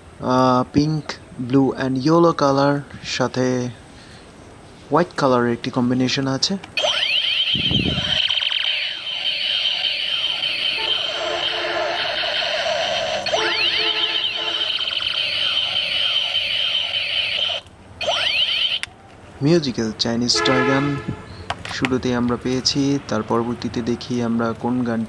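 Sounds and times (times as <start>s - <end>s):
steady shrill tone: 6.8s - 18.8s
toy gun laser sweeps: 6.8s - 18.9s.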